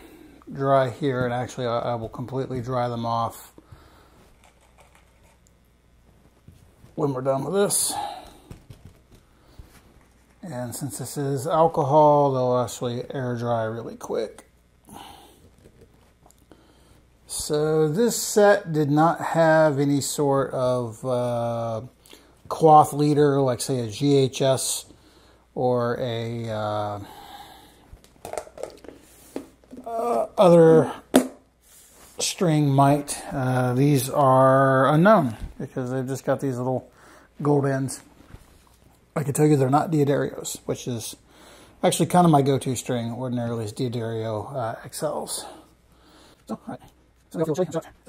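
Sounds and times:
faint handling noises: 0.4s - 10.8s
plastic lid clicks and rustles: 28.0s - 29.8s.

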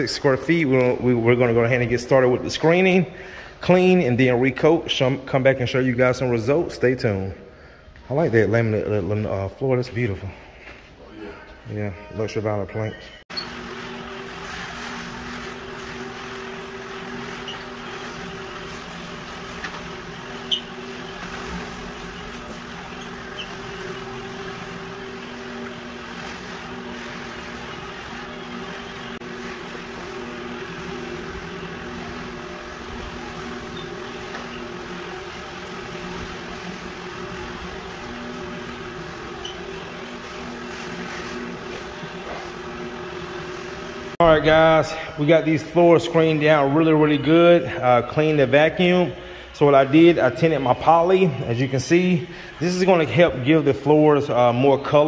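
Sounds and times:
floor buffer motor hum: 0.0s - 55.0s.

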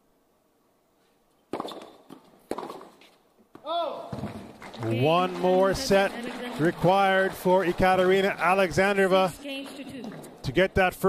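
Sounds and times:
tennis ball hit by racket: 1.5s - 4.5s.

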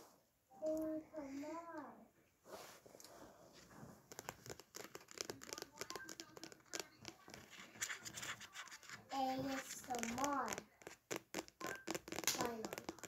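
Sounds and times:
fingers tapping plastic tumbler: 4.1s - 13.0s.

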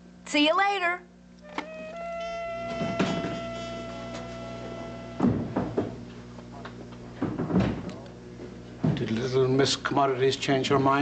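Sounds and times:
faint low room hum: 0.0s - 11.0s
door shutting with a thud: 2.6s - 6.0s, 7.2s - 8.0s.

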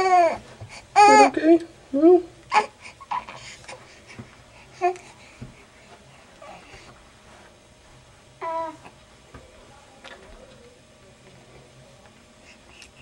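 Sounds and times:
baby cooing and babbling: 0.0s - 0.4s, 1.0s - 1.5s, 2.5s - 3.5s, 8.4s - 9.0s.

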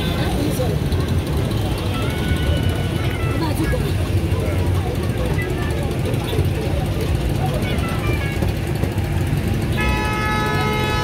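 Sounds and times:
people talking: 0.0s - 9.5s
traffic rumble: 0.0s - 11.0s
vehicle horn: 9.7s - 11.0s.

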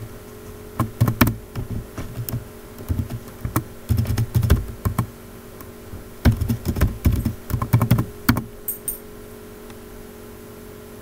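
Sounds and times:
computer keyboard typing: 0.8s - 5.1s, 6.2s - 9.0s.

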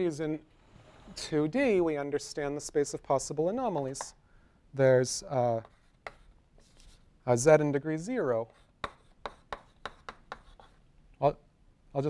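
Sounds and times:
chalk tapping and scraping: 5.5s - 7.1s, 8.3s - 10.9s.

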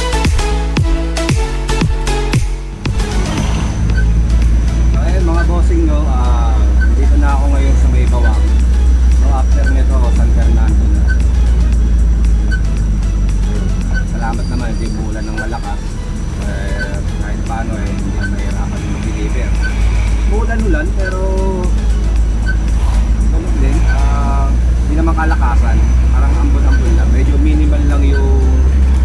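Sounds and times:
background music with steady beat: 0.0s - 29.0s
vehicle engine and road noise: 0.0s - 29.0s
person speaking: 14.0s - 21.8s, 23.2s - 28.7s.

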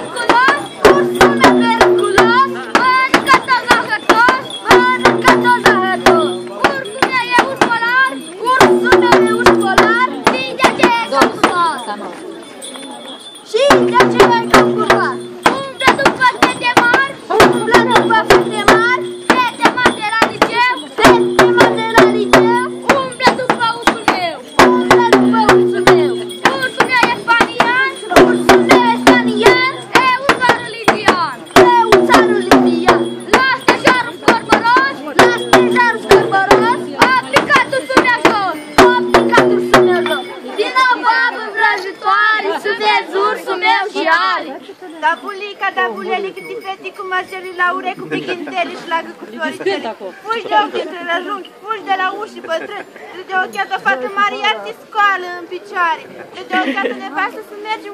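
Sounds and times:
drum beaten in quick rhythm: 0.0s - 12.0s, 12.6s - 44.3s.

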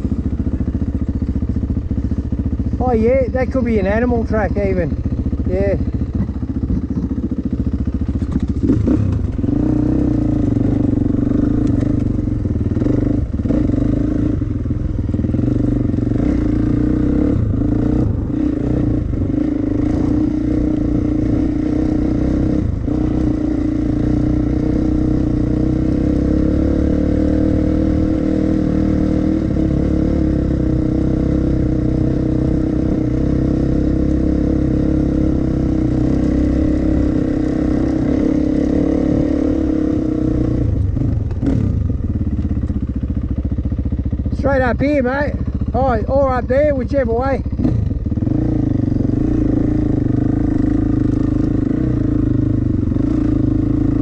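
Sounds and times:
dirt bike engine running: 0.0s - 54.0s.

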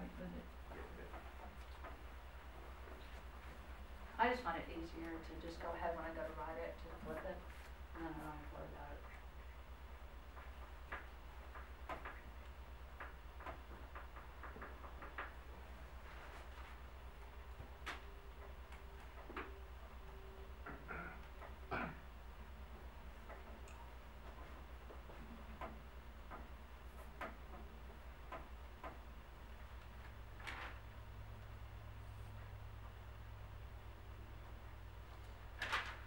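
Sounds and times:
steady low hum: 0.0s - 36.0s
faint sharp clicks and taps: 0.3s - 2.1s, 10.3s - 15.5s.

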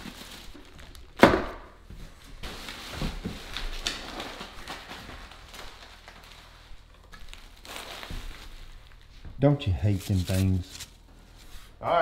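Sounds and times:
packing materials rustling: 0.0s - 1.2s, 2.0s - 9.2s, 9.8s - 11.5s.

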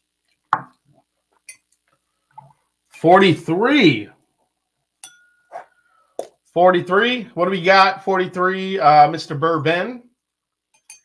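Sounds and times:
glass knocking on wooden table: 0.6s - 0.8s.

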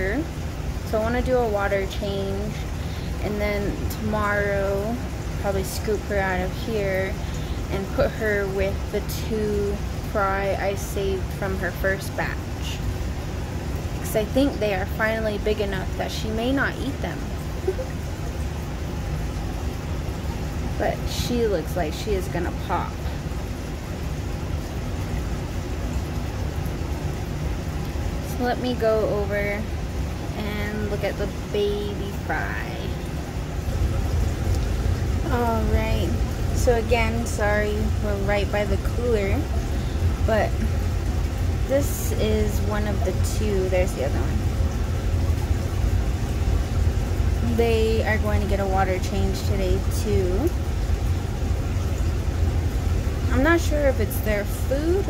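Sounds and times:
aquarium sponge filter running: 0.0s - 55.0s
cooler humming: 0.0s - 55.0s.

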